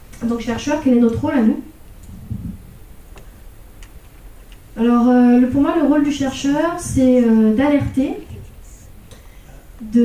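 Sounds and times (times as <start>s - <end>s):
low steady hum: 0.0s - 10.0s
soft low thump: 2.1s - 2.6s.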